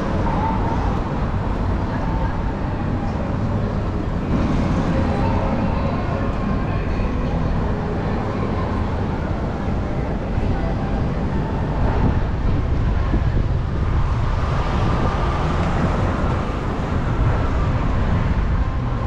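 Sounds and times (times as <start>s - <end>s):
crowd voices: 0.0s - 19.0s
road traffic: 0.0s - 19.0s.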